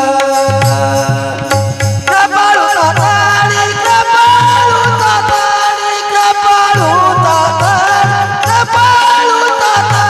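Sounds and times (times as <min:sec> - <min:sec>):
regular drum beat: 0:00.0 - 0:05.6.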